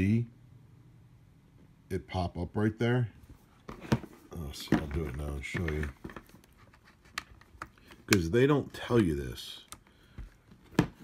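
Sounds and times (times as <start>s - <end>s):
cable handling noise: 3.6s - 11.0s.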